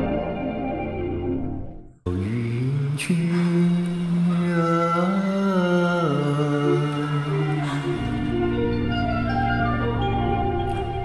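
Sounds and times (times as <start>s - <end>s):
person singing a long note: 2.1s - 8.3s
musical accompaniment: 3.1s - 11.0s.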